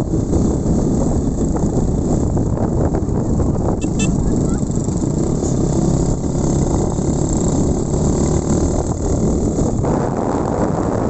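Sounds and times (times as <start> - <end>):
motorcycle engine running: 0.0 - 11.0
wind rumble on microphone: 0.0 - 11.0.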